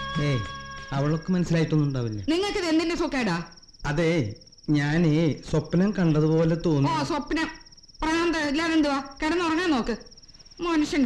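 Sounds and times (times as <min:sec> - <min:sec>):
crickets trilling: 0:00.0 - 0:11.0
voices in dialogue: 0:00.0 - 0:11.0.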